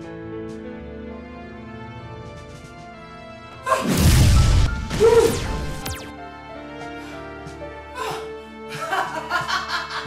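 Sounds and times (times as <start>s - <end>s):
film score music: 0.0s - 10.0s
lightning crackling crash: 3.9s - 6.1s.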